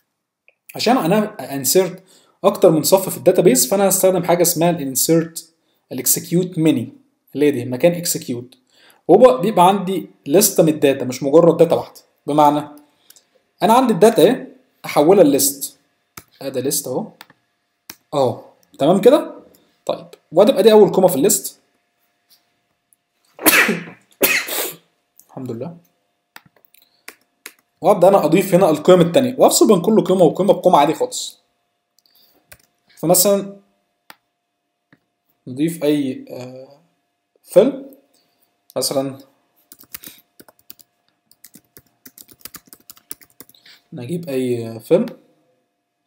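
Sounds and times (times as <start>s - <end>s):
man sneezing: 23.4s - 24.9s
computer keyboard typing: 32.5s - 32.7s, 39.7s - 43.6s.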